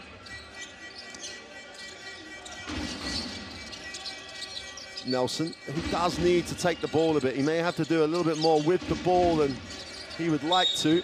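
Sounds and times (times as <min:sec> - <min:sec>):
crowd noise: 0:00.0 - 0:11.0
music over arena sound system: 0:00.0 - 0:11.0.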